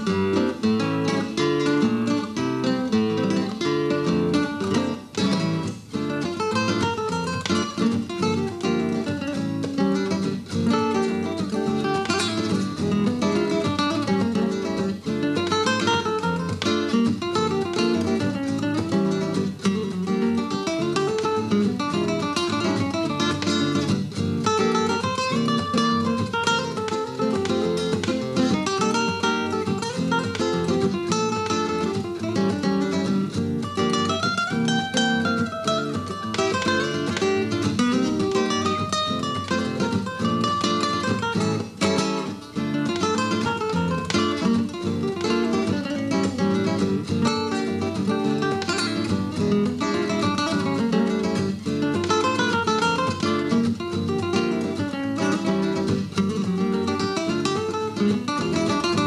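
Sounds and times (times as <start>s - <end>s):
nylon-string acoustic guitar duet: 0.0s - 59.0s.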